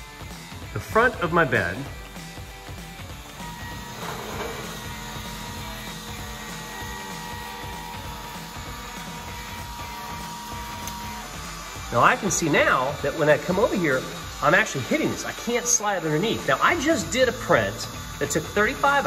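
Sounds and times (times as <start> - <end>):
stepper motors whining: 0.2 - 19.0.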